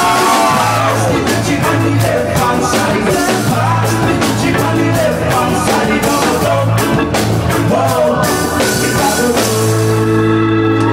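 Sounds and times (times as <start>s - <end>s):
man singing: 0.0s - 10.4s
held keyboard chord: 0.0s - 10.9s
live reggae band: 0.0s - 10.9s.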